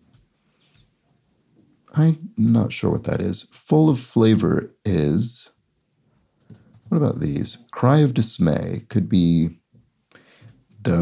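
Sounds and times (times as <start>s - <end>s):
man speaking: 1.9s - 5.6s, 6.9s - 9.6s, 10.8s - 11.0s.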